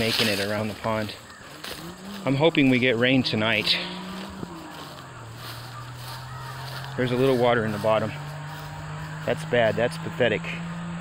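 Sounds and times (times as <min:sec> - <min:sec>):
distant motor humming: 0:00.0 - 0:11.0.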